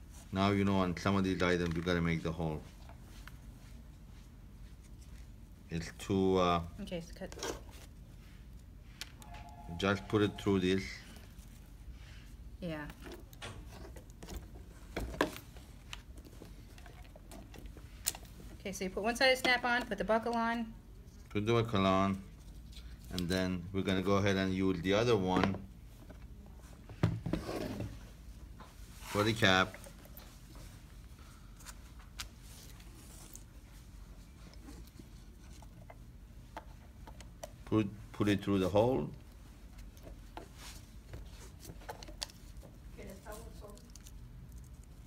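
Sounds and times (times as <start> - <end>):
low room noise: 0.0 - 45.0.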